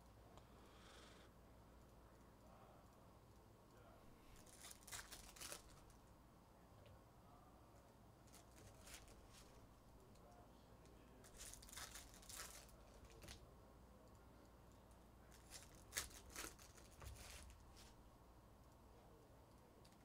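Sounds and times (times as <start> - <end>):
wrapper tearing and crinkling: 4.4 - 5.9, 11.3 - 13.4, 15.3 - 16.9.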